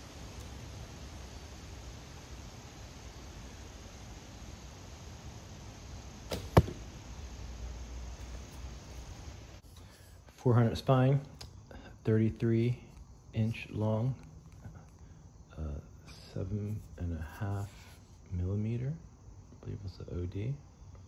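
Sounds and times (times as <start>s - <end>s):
steady outdoor hiss: 0.0s - 21.0s
bow shot cracks: 6.2s - 7.1s.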